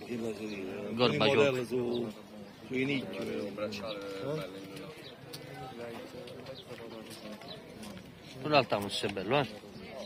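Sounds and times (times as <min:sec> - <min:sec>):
people talking in background: 0:00.0 - 0:10.0.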